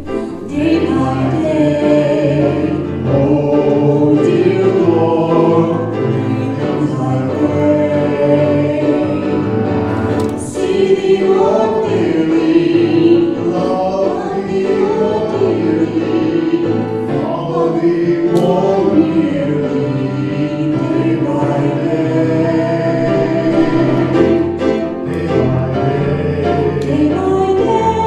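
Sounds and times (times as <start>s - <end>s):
man and woman singing a duet: 0.0s - 9.5s, 10.1s - 28.0s
musical accompaniment: 0.0s - 28.0s.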